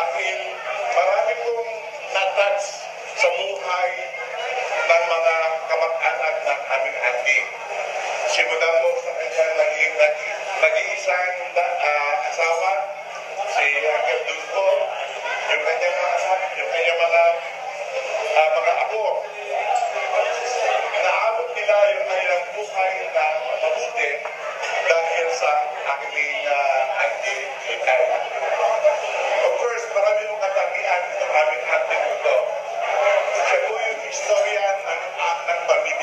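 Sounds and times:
man speaking over loudspeaker: 0:00.0 - 0:36.0.

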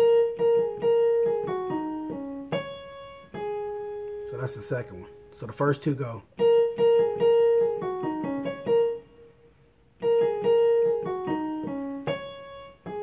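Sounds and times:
piano melody on keyboard: 0:00.0 - 0:13.0.

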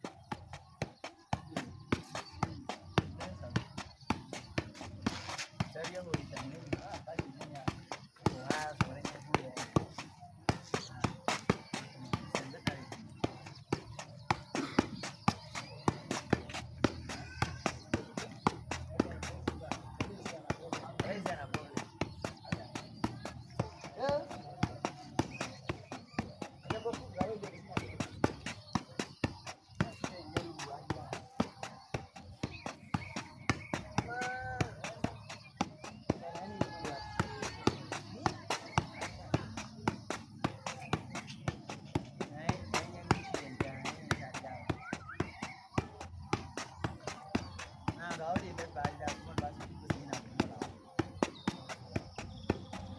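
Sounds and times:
shoe kicking football: 0:00.0 - 0:52.9
faint background voices: 0:00.2 - 0:52.9.

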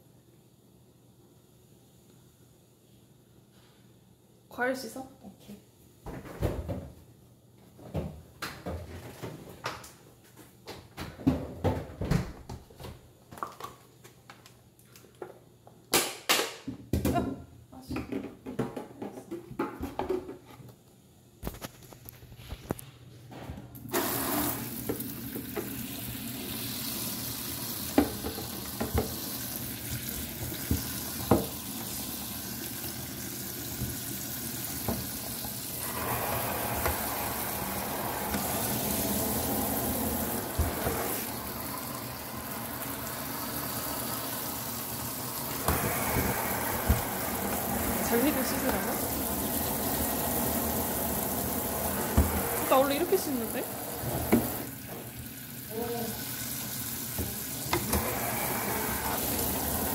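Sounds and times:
tap running into steel sink: 0:27.8 - 0:29.3, 0:29.9 - 0:31.6, 0:34.8 - 0:35.1, 0:45.5 - 0:48.8, 0:52.0 - 0:52.5, 0:54.2 - 0:55.0.

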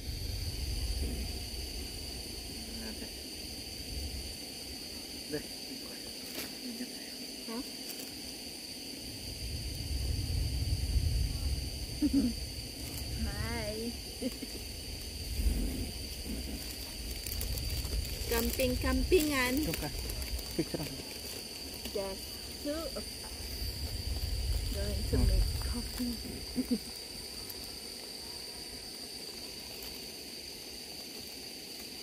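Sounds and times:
low rumble: 0:00.0 - 0:04.9, 0:09.0 - 0:20.9, 0:21.6 - 0:26.8
camp stove hissing: 0:00.0 - 0:32.0.

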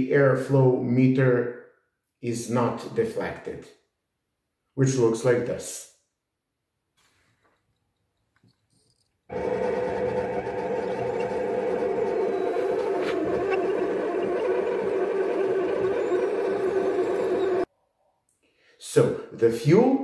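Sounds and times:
electric fuel pump humming: 0:09.3 - 0:17.7.

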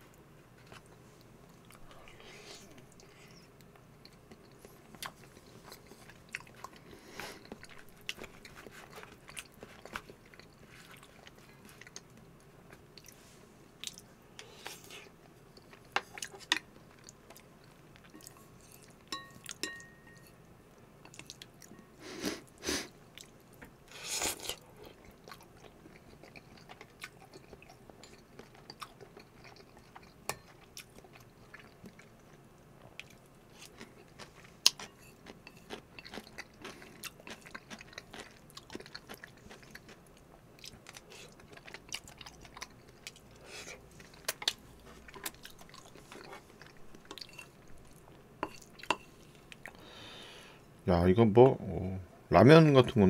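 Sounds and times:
chopsticks tapping ceramic bowl: 0:19.1 - 0:20.4
wet chewing: 0:23.1 - 0:32.4, 0:33.0 - 0:50.0.

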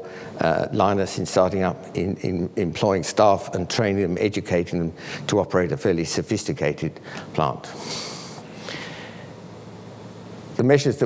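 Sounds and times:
man drawing a breath: 0:07.0 - 0:09.4.

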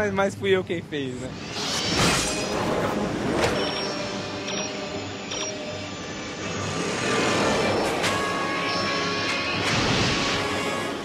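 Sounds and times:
music: 0:02.4 - 0:11.0
short electronic beeps: 0:03.5 - 0:06.0
rushing vehicle sound: 0:05.9 - 0:11.0.

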